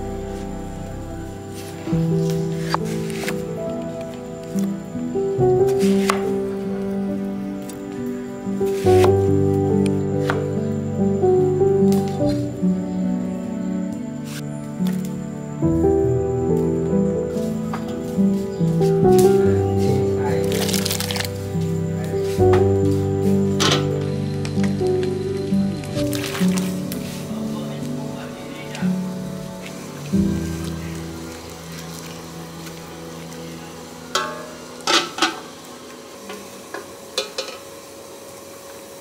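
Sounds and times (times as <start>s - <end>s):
background music with held tones: 0.0s - 39.0s
pot lid clanking on metal pot: 34.2s - 35.5s, 37.2s - 37.6s.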